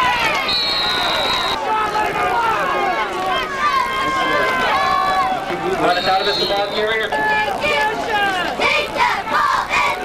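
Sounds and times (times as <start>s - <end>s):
crowd shouting and calling: 0.0s - 10.0s.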